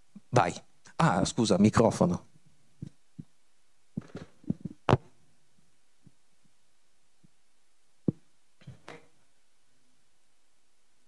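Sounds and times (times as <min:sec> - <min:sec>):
microphone handling thumps: 0:04.0 - 0:05.1.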